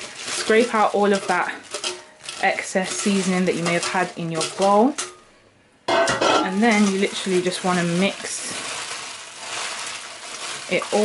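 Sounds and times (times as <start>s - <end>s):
plastic bag rustling and crinkling: 0.0s - 5.1s, 6.2s - 11.0s.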